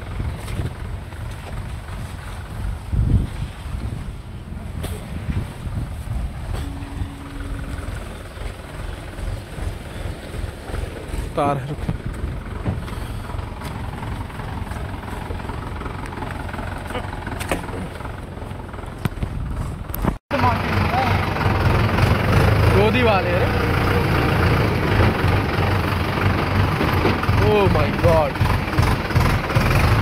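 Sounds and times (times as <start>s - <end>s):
tractor diesel engine rumbling: 0.0s - 30.0s.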